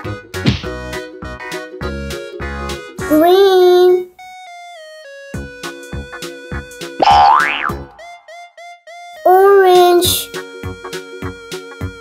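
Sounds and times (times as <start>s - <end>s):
upbeat background music: 0.0s - 12.0s
cartoon boing: 7.0s - 8.0s.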